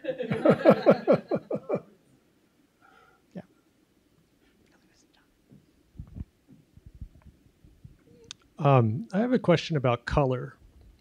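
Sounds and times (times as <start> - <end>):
soft low thumps: 5.5 - 8.1.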